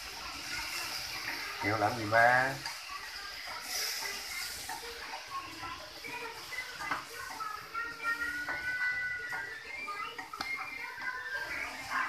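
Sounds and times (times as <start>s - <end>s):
mushrooms sizzling in a wok: 0.0s - 12.0s.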